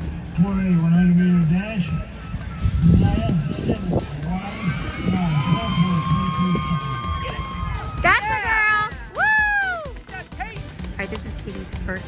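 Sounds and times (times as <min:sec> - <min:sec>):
music playing: 0:00.0 - 0:12.0
announcer over public address: 0:00.4 - 0:07.4, 0:08.0 - 0:08.9.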